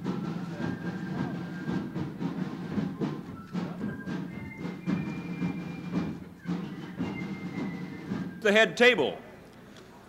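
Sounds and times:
drums beating: 0.0 - 9.2.

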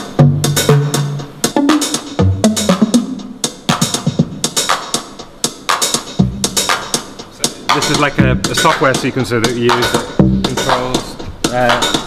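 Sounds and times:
drum machine clap and hi-hat: 0.0 - 12.0.

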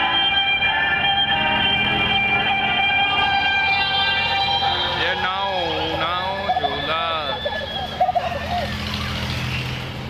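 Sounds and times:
crowd and ride noise: 3.1 - 10.0
wavering voice-like tone: 5.6 - 8.8.

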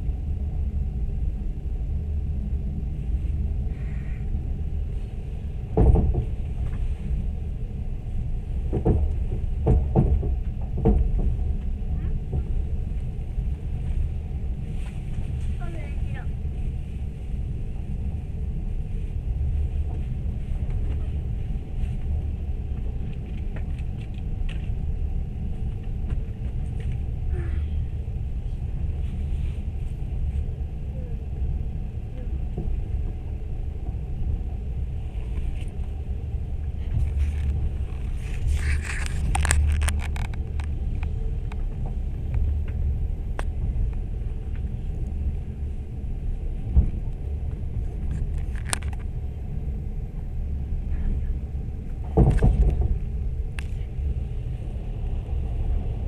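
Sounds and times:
train rumbling inside carriage: 0.0 - 56.0.

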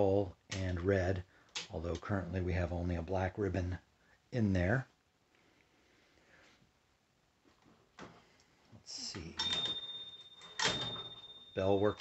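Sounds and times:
typewriter carriage clacking: 9.4 - 12.0
typewriter margin bell ringing: 9.4 - 12.0.

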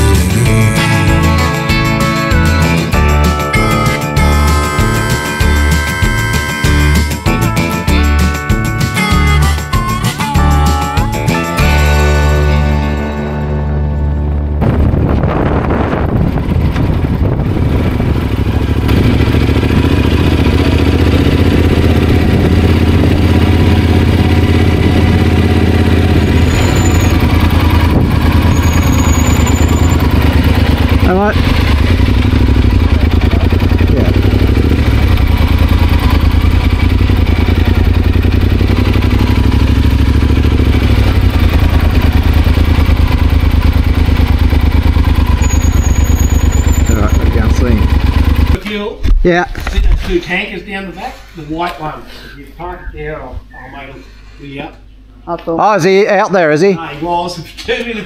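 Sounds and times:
motorcycle engine droning: 0.0 - 48.6.

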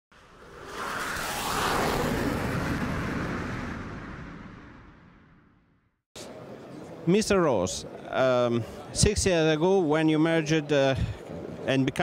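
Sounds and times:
rushing whoosh dropping in pitch: 0.1 - 5.8.

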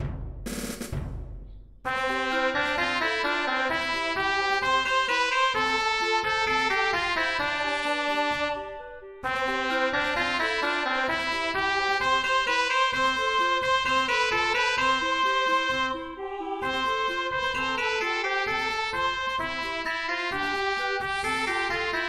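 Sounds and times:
brass-like held notes: 1.9 - 22.0
clarinet arpeggios: 1.9 - 22.0.

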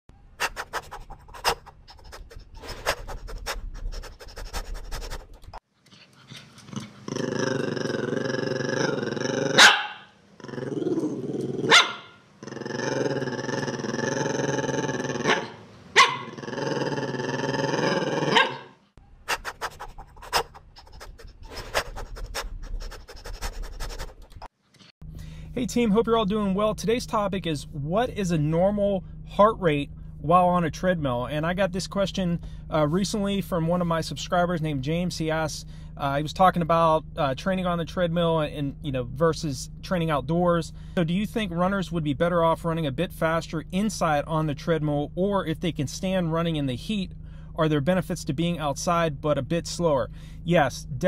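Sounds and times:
dog panting: 0.4 - 7.1, 19.3 - 24.5
dog drawn-out vocal sounds: 0.4 - 24.5.

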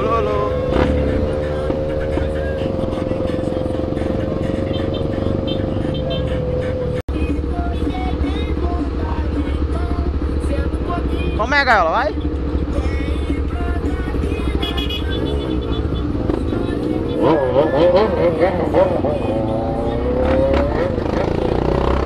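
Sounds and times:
motorcycle engine running: 0.0 - 22.0
other motorcycles in traffic: 0.0 - 22.0.

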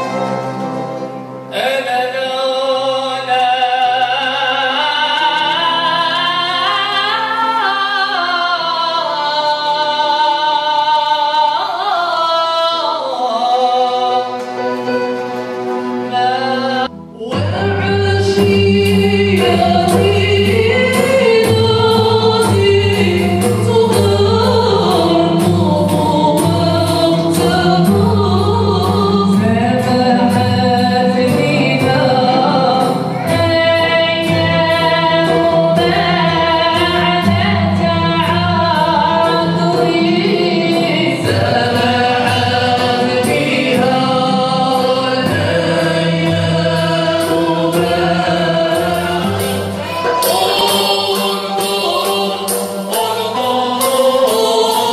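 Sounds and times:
ensemble of strings and keyboard: 13.0 - 54.9
voices singing together: 17.5 - 54.9.

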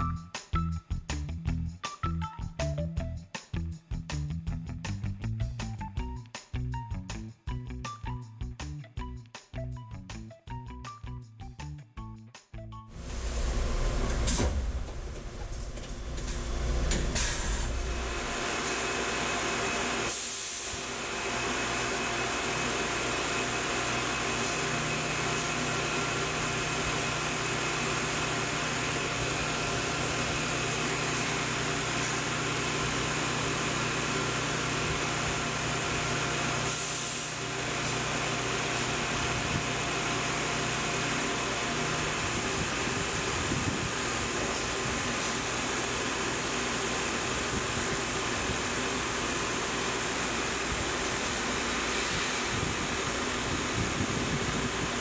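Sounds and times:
milling machine cutting metal: 13.1 - 55.0.

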